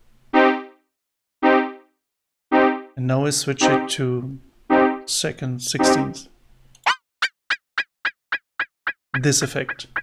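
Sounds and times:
synth delay chirps: 3.6s - 4.1s, 4.7s - 5.1s, 5.8s - 6.2s.

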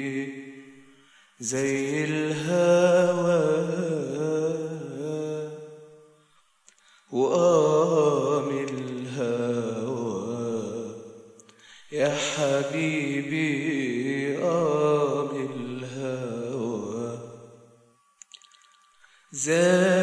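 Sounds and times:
man singing wordless phrases: 1.4s - 5.6s, 7.1s - 11.0s, 11.9s - 17.3s, 19.3s - 20.0s.

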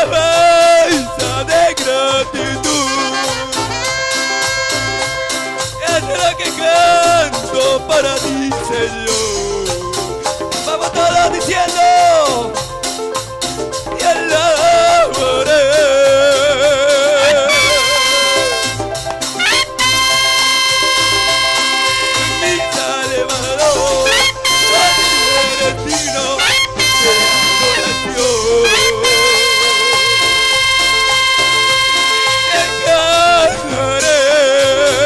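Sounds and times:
wavering melody with vibrato: 0.0s - 8.5s, 14.0s - 34.1s
trumpet: 0.0s - 10.0s, 14.0s - 35.0s
latin band playing: 0.0s - 35.0s
trombone: 0.0s - 35.0s
saxophone: 2.4s - 6.0s, 16.0s - 35.0s.

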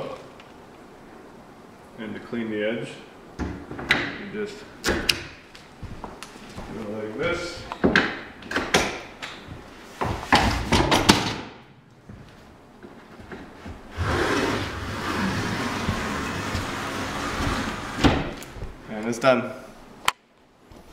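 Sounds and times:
tool scraping along panel edge: 13.9s - 18.2s.

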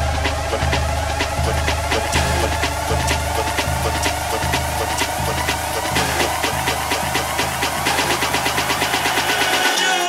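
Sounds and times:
buzzy bass line: 0.0s - 9.6s
electronic dance music: 0.0s - 10.0s
fast hi-hat pattern: 0.0s - 10.0s.

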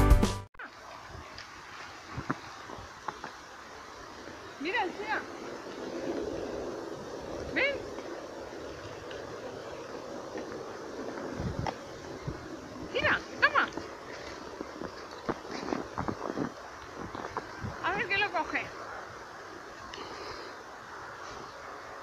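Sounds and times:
background music: 0.0s - 0.5s
dogs playing in snow: 11.3s - 22.0s.

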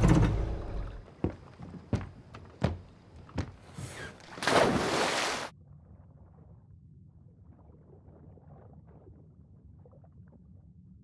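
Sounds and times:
loud splash into water: 4.4s - 5.5s.

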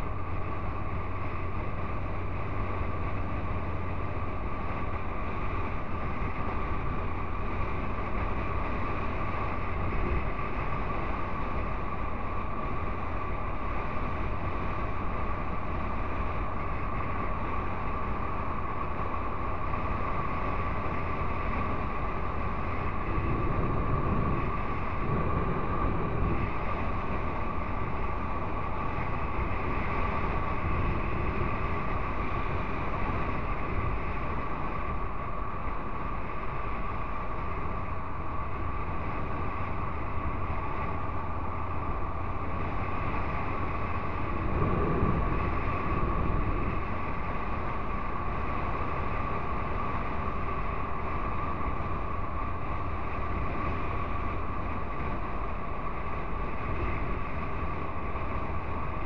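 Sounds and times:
motorcycle engine cruising: 0.0s - 59.0s
steady high whine: 0.0s - 59.0s
wind rumble on microphone: 0.0s - 59.0s.

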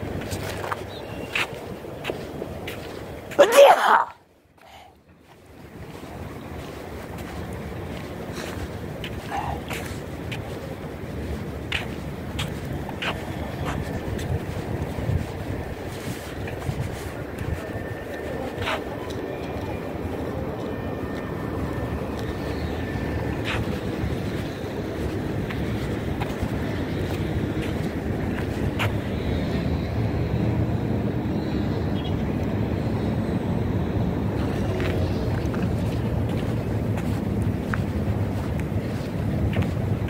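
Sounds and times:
wind buffeting microphone: 5.1s - 40.0s.

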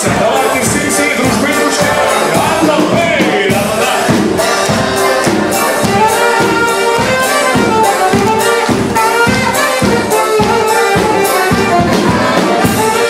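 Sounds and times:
live band playing dance song: 0.0s - 13.0s
guests clapping along: 3.9s - 13.0s.

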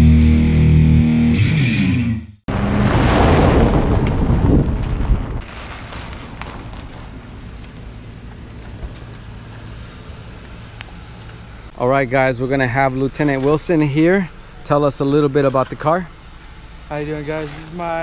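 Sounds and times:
distorted rock music: 0.0s - 2.4s
loud rushing noise: 2.5s - 5.4s
car rolling up and stopping: 2.5s - 11.7s.

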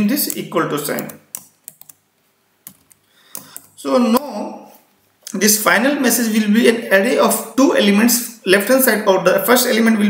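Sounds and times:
keyboard keystroke clicks: 0.2s - 2.0s.

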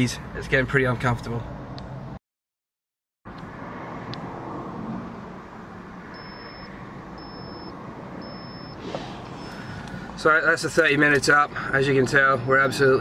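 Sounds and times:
low traffic rumble: 0.0s - 2.2s, 3.3s - 13.0s
short high beeps: 6.1s - 8.8s.

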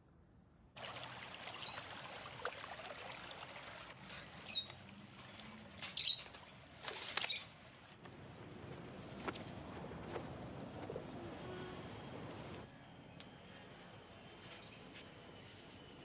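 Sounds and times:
water spraying onto plants: 0.8s - 4.5s.

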